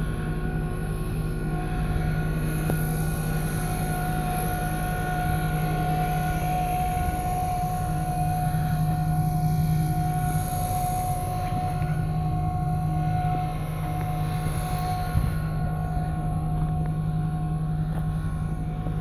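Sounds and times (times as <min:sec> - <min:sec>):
engine running steadily: 0:00.0 - 0:19.0.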